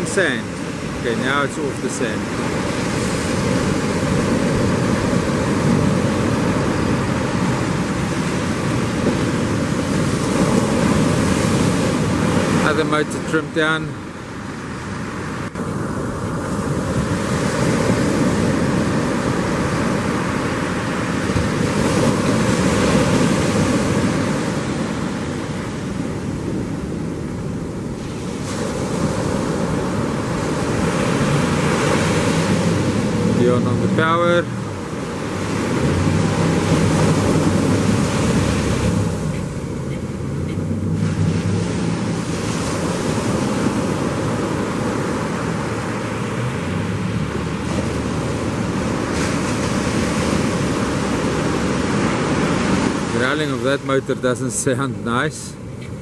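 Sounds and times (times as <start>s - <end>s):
outboard motors running: 0.0s - 56.0s
wind buffeting microphone: 14.0s - 53.3s
surf breaking: 15.6s - 55.4s.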